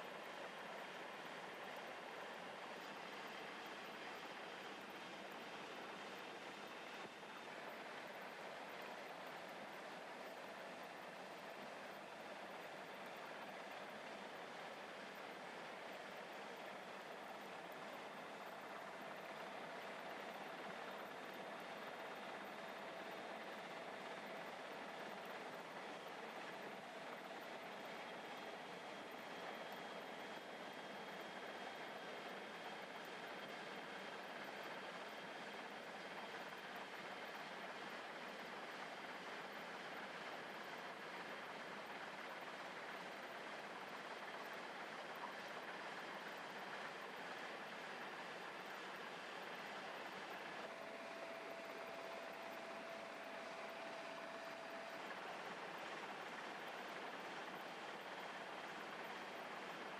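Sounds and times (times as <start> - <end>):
faint steady hum: 0.0 - 59.9.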